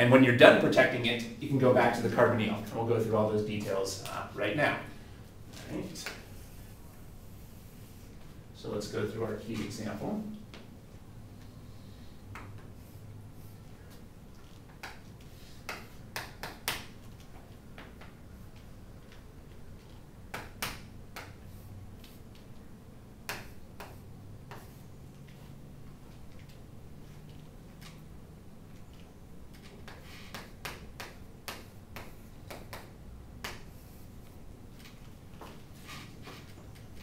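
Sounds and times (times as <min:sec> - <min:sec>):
chalk striking chalkboard: 0:23.3 - 0:24.8
chalk tapping and scraping on chalkboard: 0:23.3 - 0:25.6, 0:29.5 - 0:34.1.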